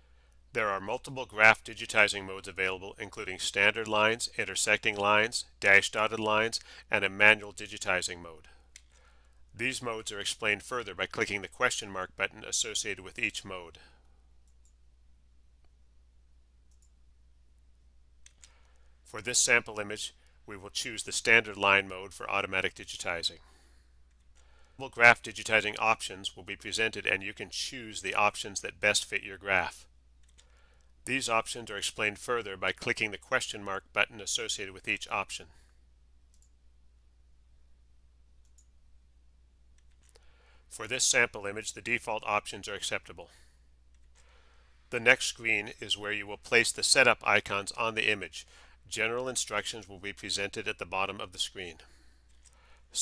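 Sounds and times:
computer mouse clicks: 8.7 - 9.0, 16.7 - 17.0, 18.2 - 18.8, 30.2 - 30.9, 36.3 - 36.6, 38.4 - 38.7
faint short clicks: 36.3 - 36.6.

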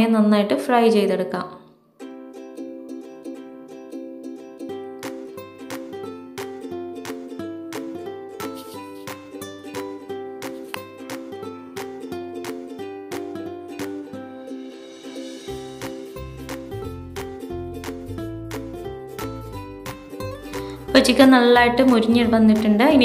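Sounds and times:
plucked string tune: 2.0 - 23.0.

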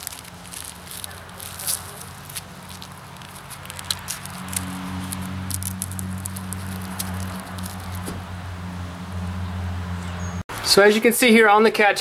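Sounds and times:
clicks and rustles of strap: 0.0 - 8.1.

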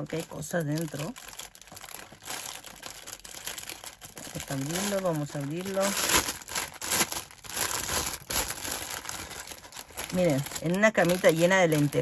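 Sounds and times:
cellophane bag crinkling: 0.0 - 12.0.

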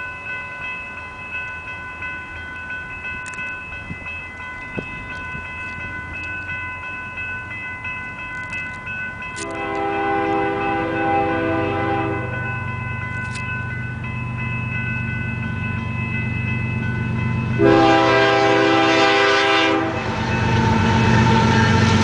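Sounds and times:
crossing warning bell ringing: 0.0 - 22.0
freight train rumble: 0.0 - 22.0
locomotive air horn: 9.4 - 12.4, 17.6 - 20.2.

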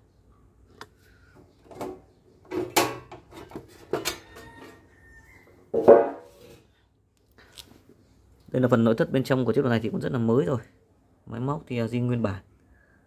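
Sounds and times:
handling noises on metal casing: 1.4 - 4.8.

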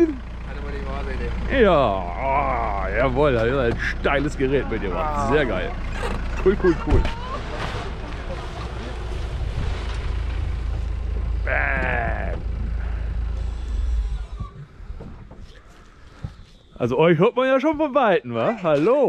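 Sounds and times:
steady low rumble: 0.0 - 17.1
person calling out: 11.5 - 12.5.

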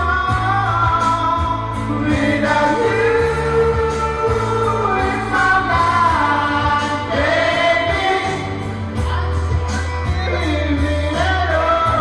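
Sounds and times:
backing track with bass line: 0.0 - 12.0
person singing karaoke: 0.0 - 12.0.

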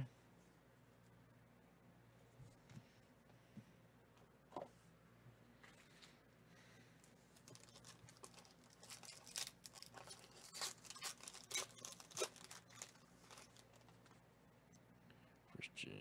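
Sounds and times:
foil wrapper crinkling and tearing: 7.3 - 14.2.

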